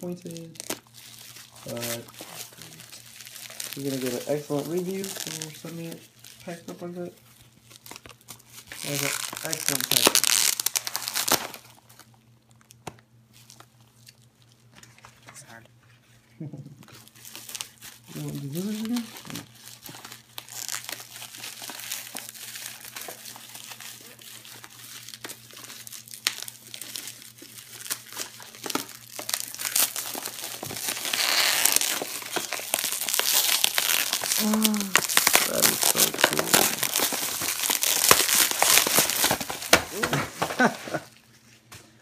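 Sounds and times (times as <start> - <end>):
bubble wrap crinkling and crackling: 0.0 - 42.0.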